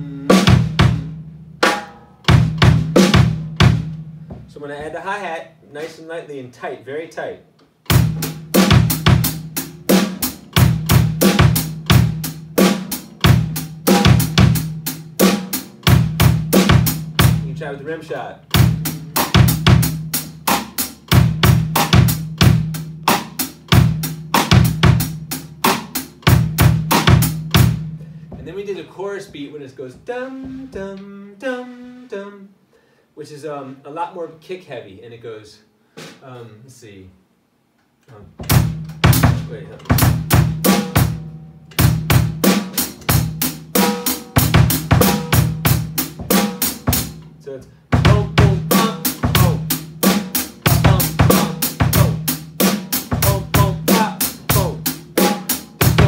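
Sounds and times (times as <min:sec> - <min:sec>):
drum kit groove: 0:00.0 - 0:06.1, 0:07.7 - 0:32.1, 0:35.9 - 0:36.5, 0:38.1 - 0:56.0.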